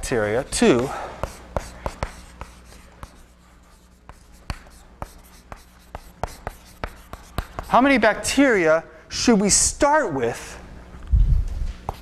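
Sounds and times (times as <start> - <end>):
chalk tapping and scratching: 0.2 - 8.0, 11.8 - 12.0.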